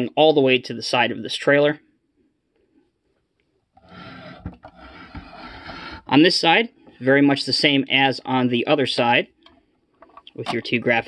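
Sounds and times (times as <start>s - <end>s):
model sliding on tabletop: 3.8s - 6.2s.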